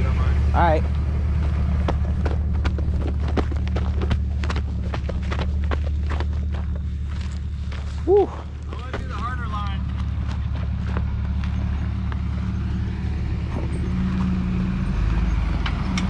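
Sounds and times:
truck engine idling: 0:00.0 - 0:16.0
footsteps on gravel and rock: 0:01.4 - 0:12.2.

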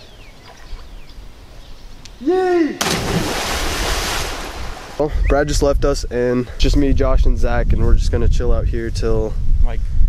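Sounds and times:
person yelling: 0:02.2 - 0:02.8
loud splash into river: 0:02.8 - 0:05.0
rushing water: 0:02.8 - 0:05.1.

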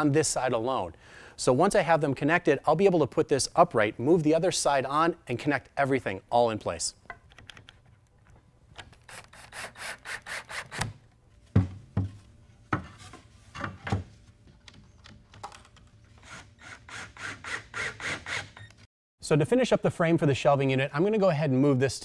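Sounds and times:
wood knocking against wood: 0:11.6 - 0:13.0.

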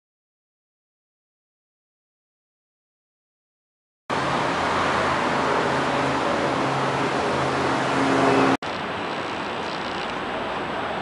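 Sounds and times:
city traffic rushing: 0:04.1 - 0:11.0.

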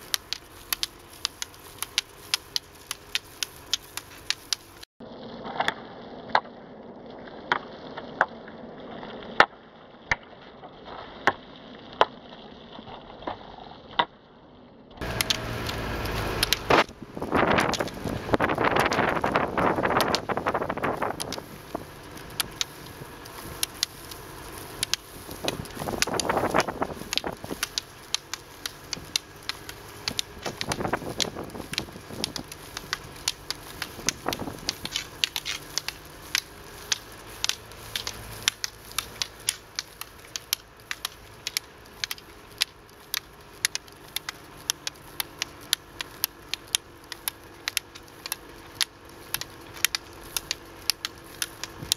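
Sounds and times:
ski pole tips clicking on asphalt: 0:00.0 - 0:04.9, 0:15.0 - 0:51.9
roller ski wheels rolling on road: 0:00.0 - 0:51.9.

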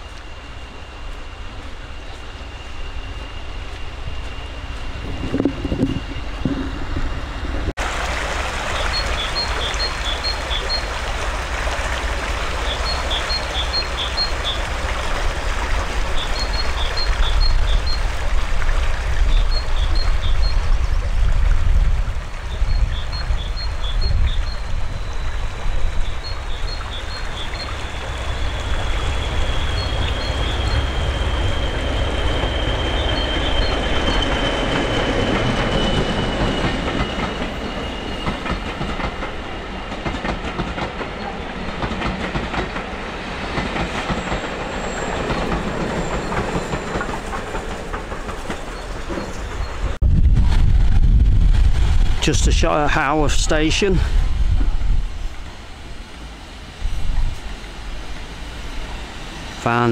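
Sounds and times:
high wheel squeal: 0:00.0 - 0:07.7, 0:23.5 - 0:40.0, 0:42.9 - 0:50.0
train wheels clickety-clack on rails: 0:00.0 - 0:07.7, 0:28.3 - 0:50.0
diesel locomotive engine running: 0:00.0 - 0:08.0, 0:24.7 - 0:50.0.

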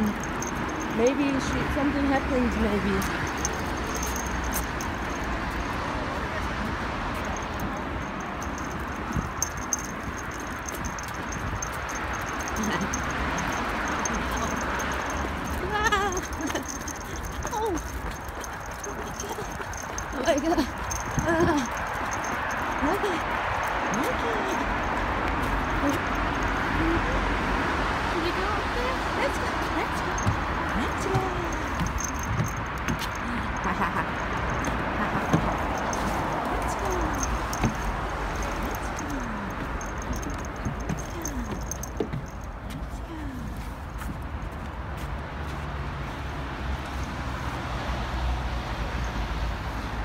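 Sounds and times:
dog collar tags jingling: 0:00.0 - 0:27.2, 0:28.1 - 0:43.6
outdoor background noise: 0:00.0 - 0:50.0
footsteps on wooden decking: 0:06.7 - 0:24.0, 0:29.6 - 0:45.7.

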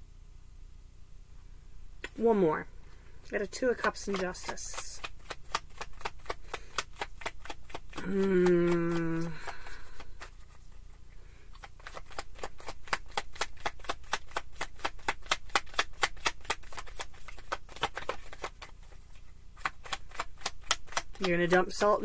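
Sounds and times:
cards being shuffled: 0:03.4 - 0:22.0.

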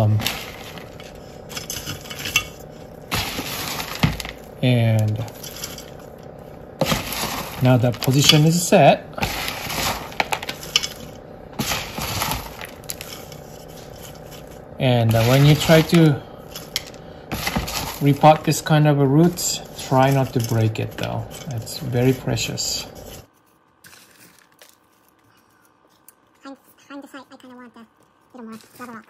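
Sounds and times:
bark chips rattling in clay pot: 0:00.0 - 0:26.2
bark chips crunching: 0:09.2 - 0:18.6, 0:23.6 - 0:26.5, 0:28.0 - 0:29.0.

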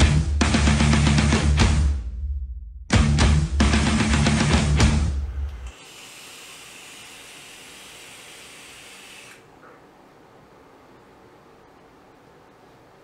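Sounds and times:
heavy metal music: 0:00.0 - 0:02.2, 0:02.9 - 0:05.6
airy hiss of vaping: 0:05.6 - 0:09.5.

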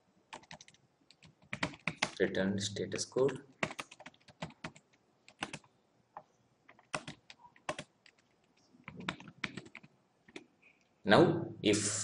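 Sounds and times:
computer keyboard typing: 0:00.3 - 0:02.2, 0:03.2 - 0:10.5.

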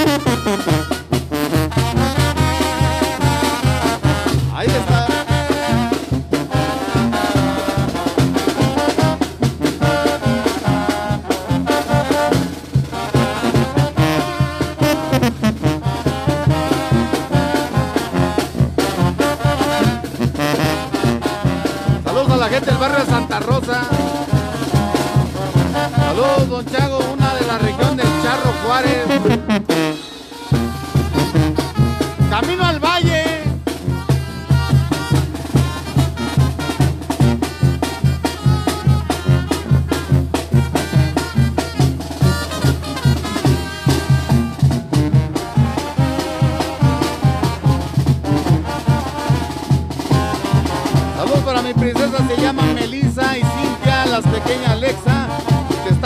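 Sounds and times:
strong bass beat: 0:00.0 - 0:29.9, 0:30.5 - 0:55.8
live band with brass: 0:00.0 - 0:56.0.

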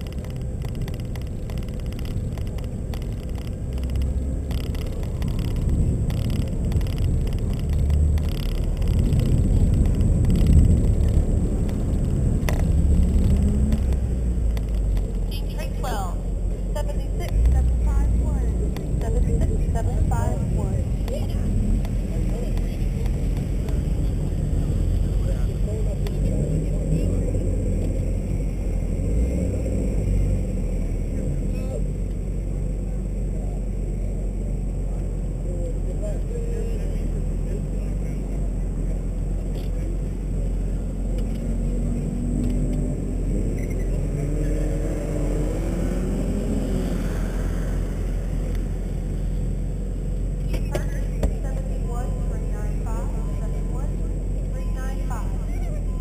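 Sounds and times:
car engine rumbling: 0:00.0 - 0:56.0.

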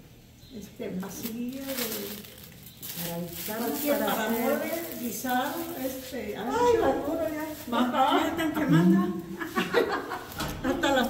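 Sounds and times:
light crinkling: 0:00.5 - 0:11.0.

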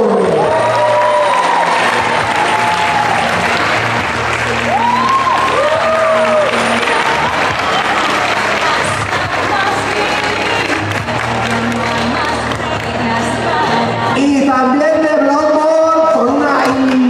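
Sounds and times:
audience applauding: 0:00.0 - 0:13.1
music through speakers: 0:00.0 - 0:17.0.

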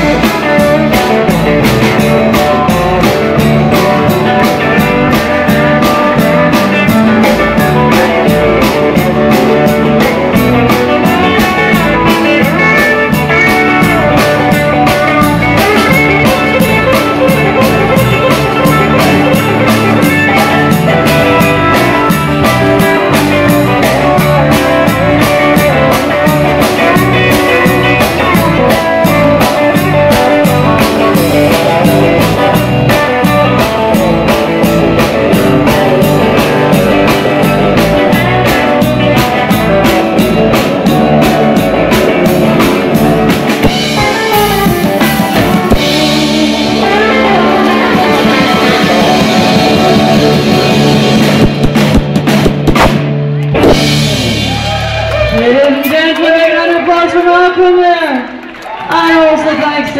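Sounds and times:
acoustic guitar: 0:00.0 - 0:55.6
drum kit: 0:00.0 - 0:56.6
electric guitar: 0:00.0 - 0:59.9.

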